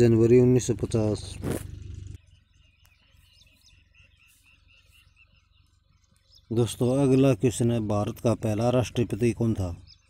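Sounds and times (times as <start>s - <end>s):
low hum: 0.1s - 6.4s.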